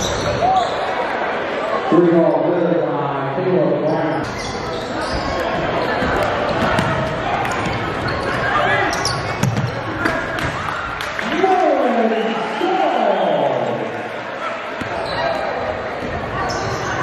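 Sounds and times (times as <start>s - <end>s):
echoing voices in a gym: 0.0s - 17.0s.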